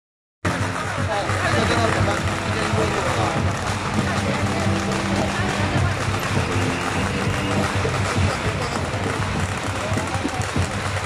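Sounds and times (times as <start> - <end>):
crowd voices talking and calling: 0.4 - 11.0
festival music with low beat: 0.4 - 11.0.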